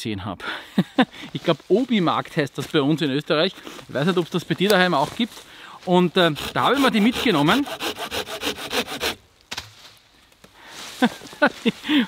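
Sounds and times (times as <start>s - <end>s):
hand saw cutting branch: 5.9s - 9.7s.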